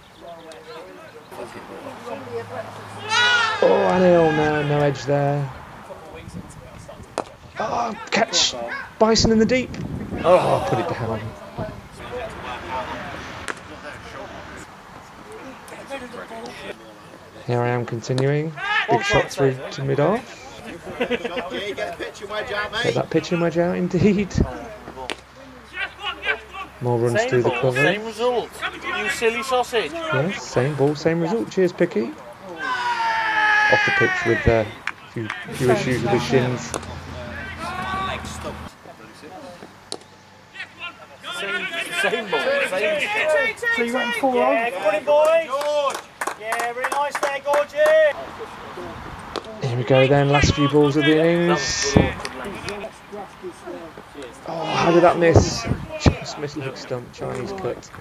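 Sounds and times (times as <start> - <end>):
distant voices calling: 0.0 - 46.3
man talking: 3.6 - 7.0, 7.6 - 14.5, 17.4 - 24.8, 25.8 - 32.4, 33.7 - 38.7, 49.6 - 52.9, 54.4 - 58.0.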